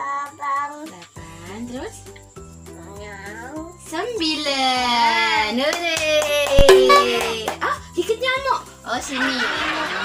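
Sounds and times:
children's music: 6.6s - 7.4s.

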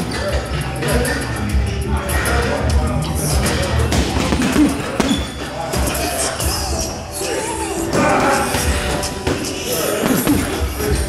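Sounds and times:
gym music: 0.0s - 11.0s.

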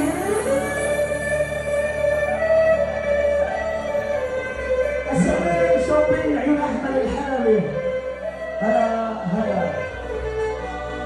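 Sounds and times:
loud arabic-style music over sound system: 0.0s - 11.0s.

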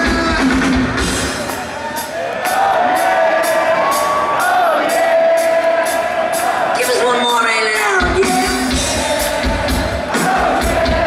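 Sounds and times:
crowd cheering and whooping: 1.2s - 6.8s.

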